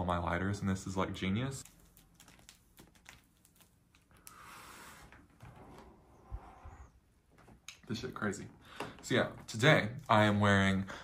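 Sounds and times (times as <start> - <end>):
person breathing in smoke: 4.2 - 5.1.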